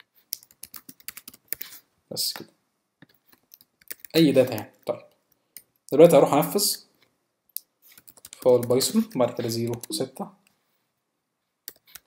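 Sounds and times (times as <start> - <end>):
computer keyboard typing: 0.3 - 1.8, 3.1 - 4.8, 7.9 - 10.0, 11.7 - 12.0.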